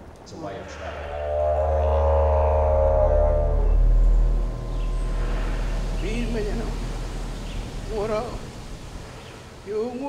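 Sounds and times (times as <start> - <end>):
didgeridoo drone: 0.5 - 8.7.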